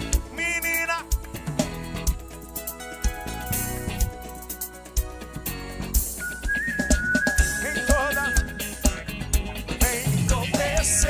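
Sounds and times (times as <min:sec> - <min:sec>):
live band steady beat: 0:00.0 - 0:11.0.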